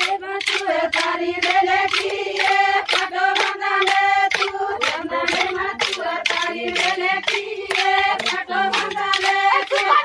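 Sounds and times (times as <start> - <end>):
rhythmic hand claps: 0.0 - 10.0
women singing folk song: 0.0 - 10.0.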